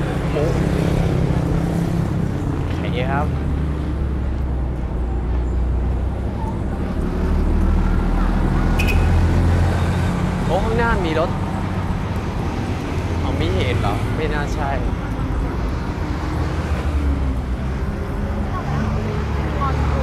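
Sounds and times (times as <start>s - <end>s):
bus passing close by: 0.0s - 20.0s
road traffic rumble: 0.0s - 20.0s.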